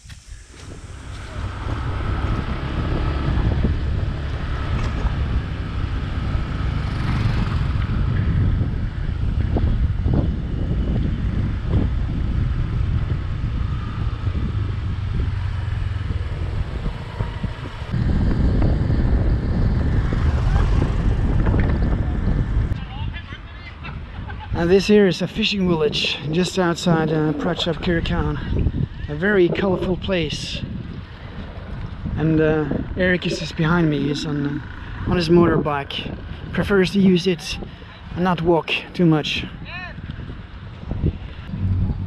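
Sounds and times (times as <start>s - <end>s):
road noise: 0.0s - 42.0s
wind buffeting microphone: 0.0s - 42.0s
motorbike engine: 0.8s - 22.8s.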